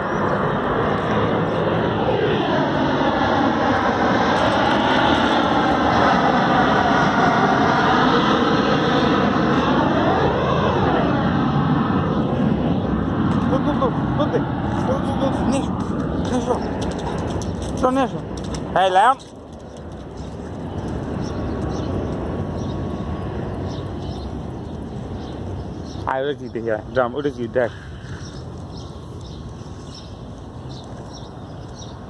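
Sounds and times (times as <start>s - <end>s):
aircraft flying low overhead: 0.0s - 32.0s.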